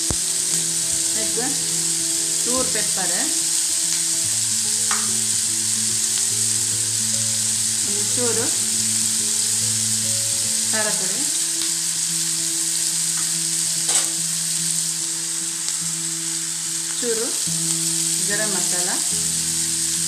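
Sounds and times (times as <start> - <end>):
vegetables sizzling in oil: 0.0 - 20.0
sharp knock: 4.9 - 5.2.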